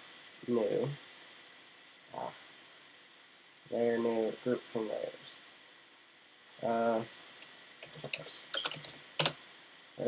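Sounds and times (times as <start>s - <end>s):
keyboard keys clicking: 7.8s - 9.4s.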